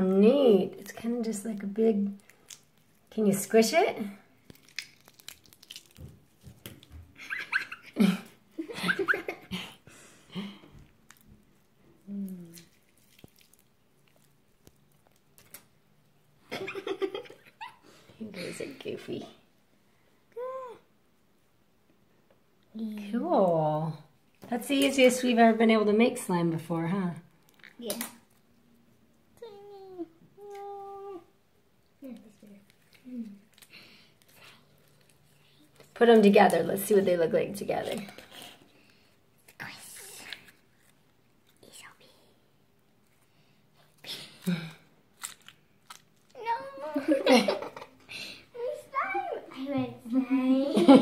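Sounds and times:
slime squelching in hands: 1.6s - 3.2s, 4.3s - 7.7s, 10.9s - 16.0s.

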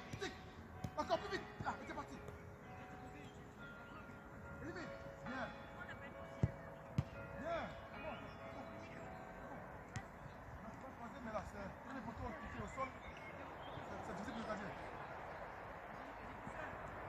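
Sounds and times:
football kicked thumps: 6.4s - 7.2s, 9.9s - 10.1s.

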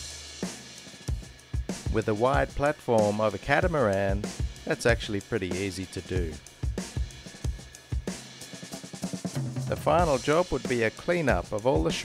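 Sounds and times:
music with steady drum beat: 0.0s - 12.0s.

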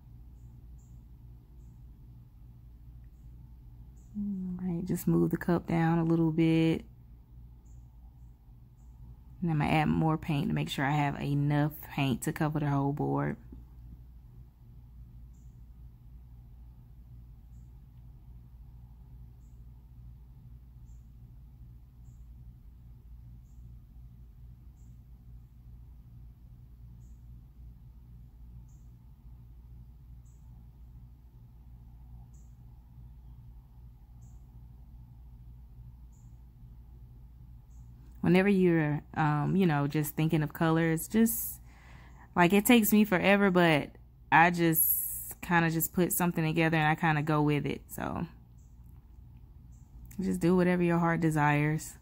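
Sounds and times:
faint high-pitched chirps: 0.0s - 2.1s, 3.0s - 4.9s, 20.7s - 22.7s, 32.1s - 34.9s, 35.9s - 36.6s
low hum: 0.0s - 52.0s.

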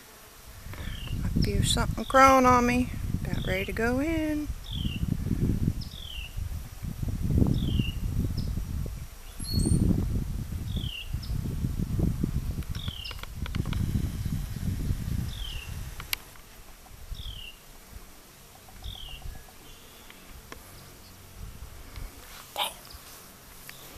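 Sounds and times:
low rumbling on microphone: 2.8s - 16.1s
bird chirping: 9.3s - 9.9s, 18.6s - 21.2s.

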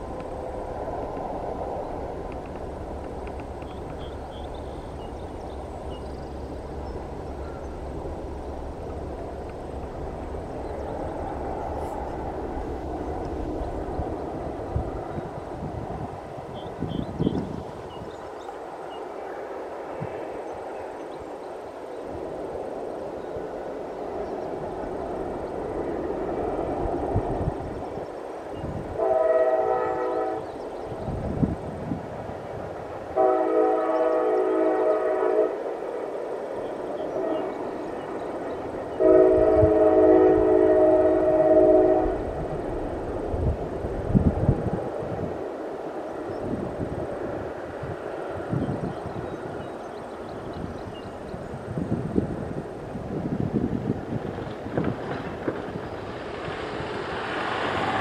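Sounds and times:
train horn blasts: 29.0s - 30.6s, 33.2s - 35.7s, 37.1s - 37.7s, 38.9s - 42.5s
freight cars rolling: 54.0s - 58.0s.

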